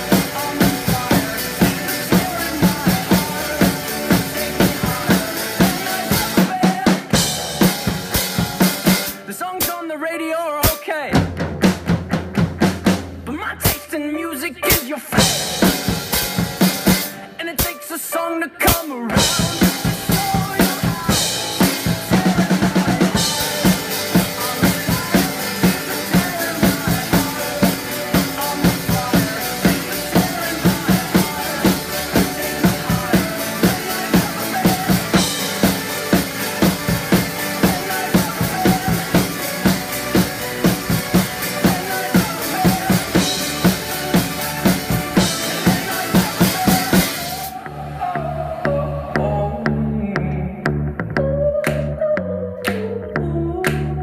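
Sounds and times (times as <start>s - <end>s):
rock drum beat: 0.0s - 10.0s, 10.6s - 17.9s, 18.6s - 47.6s
backing track music: 0.0s - 54.0s.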